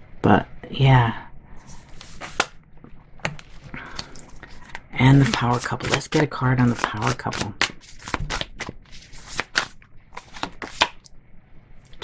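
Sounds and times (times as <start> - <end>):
cards being shuffled: 1.6 - 2.6, 3.2 - 11.0.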